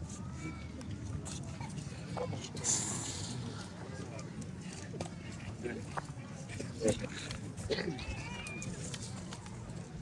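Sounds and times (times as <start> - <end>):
indistinct crowd voices: 0.0 - 10.0.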